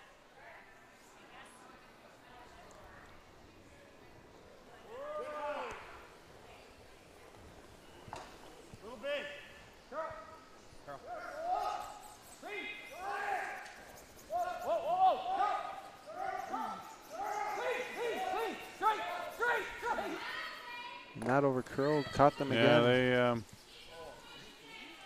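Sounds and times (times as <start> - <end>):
curlers shouting calls: 4.8 - 6.4, 8.8 - 25.0.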